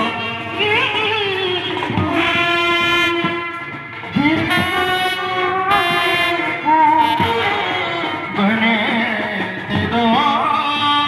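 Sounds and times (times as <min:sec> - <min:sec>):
brass band holding long note: 0:02.0 - 0:09.9.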